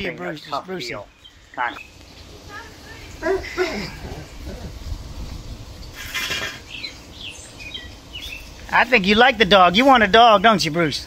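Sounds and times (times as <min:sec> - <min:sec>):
brief hissing noise: 0:05.9 - 0:06.7
bird chirps: 0:06.0 - 0:08.7.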